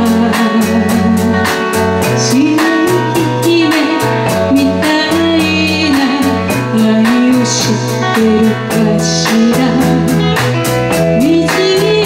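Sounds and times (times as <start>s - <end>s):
live band playing: 0.0s - 12.0s
woman singing pop ballad: 0.0s - 12.0s.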